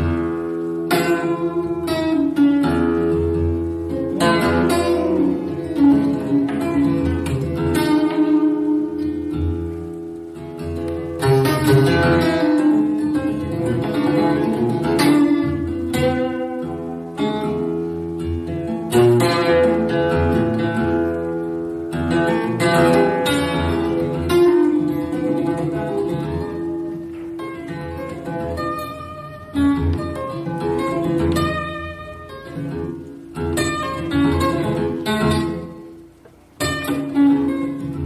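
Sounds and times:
acoustic guitar: 0.0s - 38.0s.

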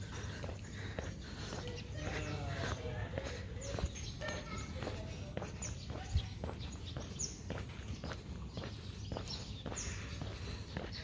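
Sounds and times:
footsteps on brick paving: 0.0s - 11.0s.

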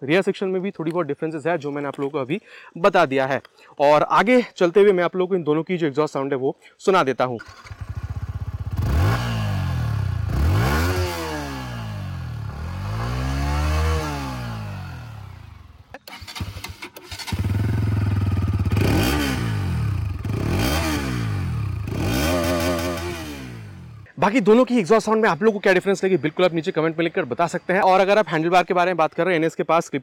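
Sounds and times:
motorcycle engine idling and revving: 7.4s - 24.1s.

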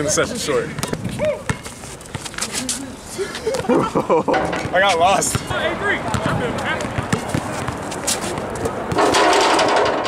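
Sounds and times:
people's voices: 2.3s - 9.0s
basketball bouncing on hard court: 6.1s - 7.8s.

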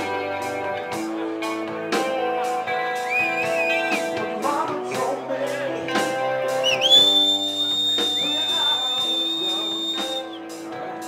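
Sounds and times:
live rock band playing: 0.0s - 11.0s
thin high whistling tone: 6.6s - 10.4s.

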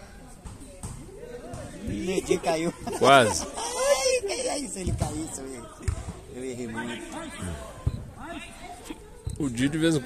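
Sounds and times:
faint voices of players calling: 0.0s - 10.0s
football kick thuds: 4.8s - 6.3s.

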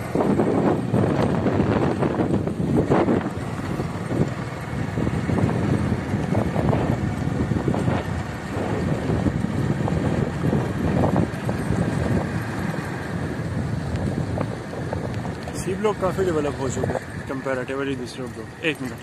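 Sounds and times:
vehicle driving on dirt road: 0.0s - 19.0s
wind buffeting microphone: 0.0s - 19.0s.

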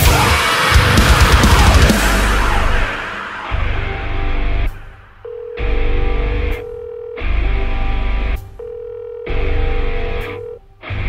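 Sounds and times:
heavy metal guitar and drums: 0.0s - 6.6s
steady high note: 0.0s - 8.4s.

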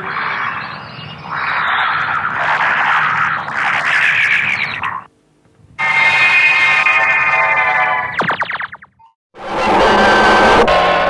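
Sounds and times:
distorted old film soundtrack: 0.0s - 5.1s, 5.8s - 11.0s.

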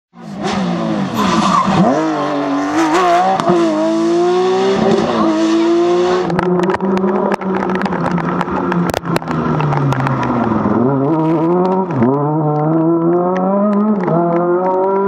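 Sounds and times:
rally car engine shifting up: 0.2s - 15.0s.

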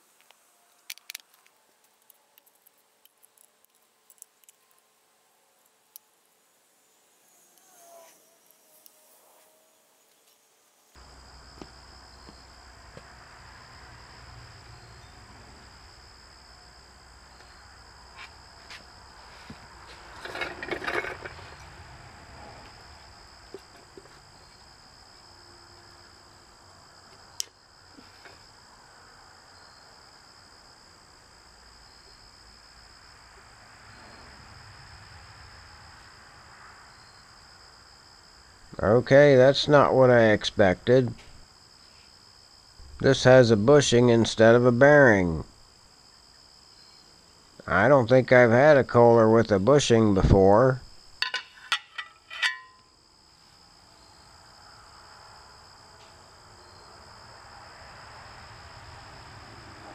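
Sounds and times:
metal clinking and scraping: 19.9s - 21.7s, 51.2s - 52.9s.

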